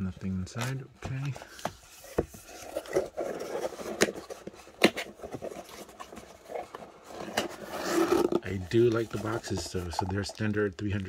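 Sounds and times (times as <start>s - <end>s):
cardboard scraping and rubbing: 1.1s - 10.7s.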